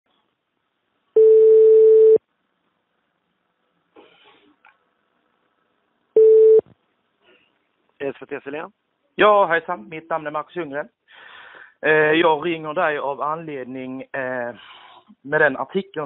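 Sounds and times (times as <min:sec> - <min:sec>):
telephone ringback tone: 0:01.2 - 0:02.2, 0:06.2 - 0:06.6.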